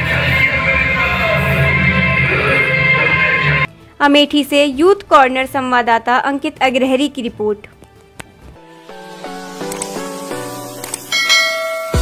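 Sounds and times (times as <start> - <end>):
synthesized music: 0.0 - 3.7, 8.6 - 12.0
bell chime: 11.1 - 12.0.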